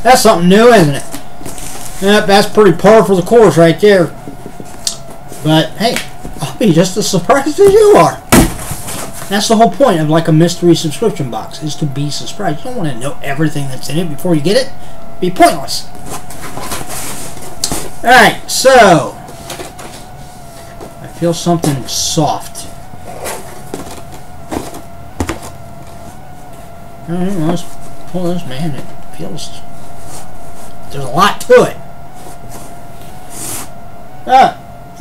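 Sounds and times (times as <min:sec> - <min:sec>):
rustling box and paper packing: 0:00.9 - 0:02.5, 0:07.6 - 0:09.5, 0:15.9 - 0:18.0, 0:19.1 - 0:26.7.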